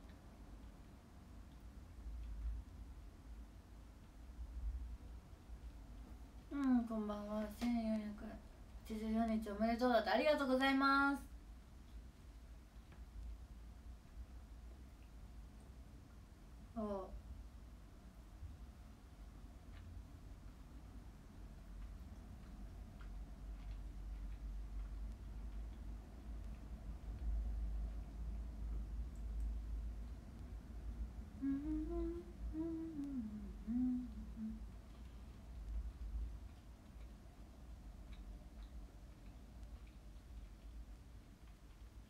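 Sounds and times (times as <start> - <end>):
steady low hum: 0.0 - 42.0
chewing: 21.5 - 27.4, 34.6 - 42.0
woman humming: 31.4 - 34.7.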